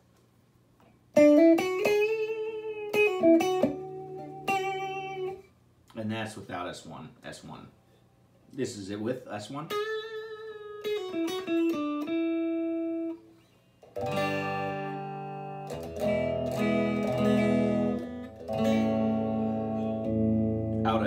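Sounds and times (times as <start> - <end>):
electric guitar single picked notes: 1.1 - 5.5, 9.7 - 13.2, 13.8 - 21.0
electric guitar strummed chords: 1.2 - 5.4, 9.7 - 13.2, 13.9 - 21.0.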